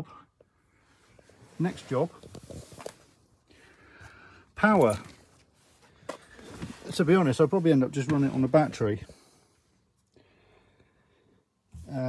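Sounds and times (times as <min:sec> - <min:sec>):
rustling: 0:01.1 - 0:03.8
intake of breath: 0:03.5 - 0:04.5, 0:09.0 - 0:11.6
person speaking: 0:06.8 - 0:09.2.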